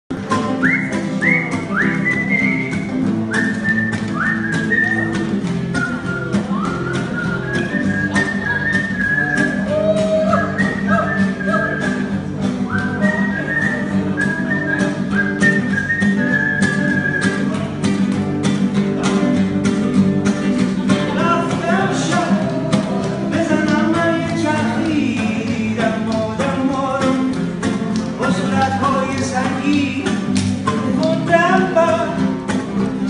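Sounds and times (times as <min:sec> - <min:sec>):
acoustic guitar strumming: 0:00.1 - 0:33.0
person whistling swooping notes: 0:00.6 - 0:05.2, 0:05.8 - 0:12.1.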